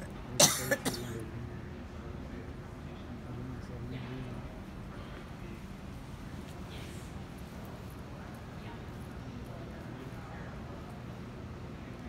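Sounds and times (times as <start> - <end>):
person coughing: 0.4 - 1.2.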